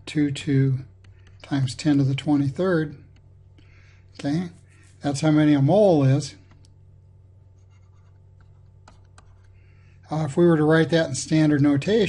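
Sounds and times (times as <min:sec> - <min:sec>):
low steady hum: 0:00.0 - 0:12.0
stylus tapping and scratching: 0:00.9 - 0:03.6, 0:07.5 - 0:09.6.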